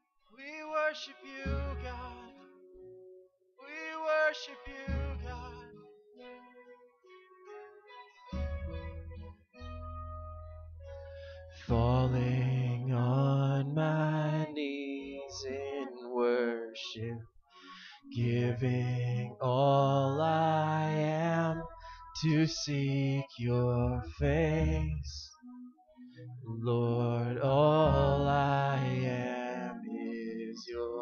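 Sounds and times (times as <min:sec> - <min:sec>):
worship band music: 0:03.7 - 0:06.4, 0:08.4 - 0:17.1, 0:18.1 - 0:25.2, 0:26.4 - 0:31.0
sustained low bass notes: 0:08.4 - 0:13.2, 0:23.4 - 0:25.2, 0:26.2 - 0:29.2
voices singing long notes: 0:11.6 - 0:31.0.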